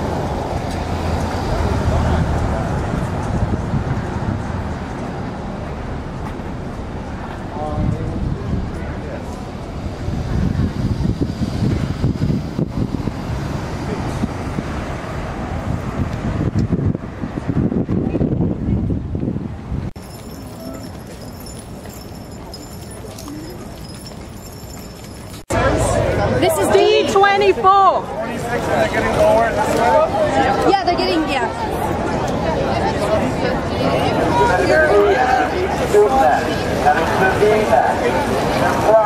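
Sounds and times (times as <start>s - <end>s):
wind buffeting microphone: 0.0s - 20.0s
low street rumble: 0.0s - 39.0s
voices chattering: 20.0s - 39.0s.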